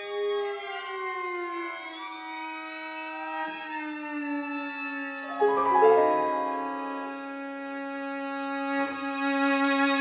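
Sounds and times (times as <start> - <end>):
string trio bowed notes: 5.3 - 10.0.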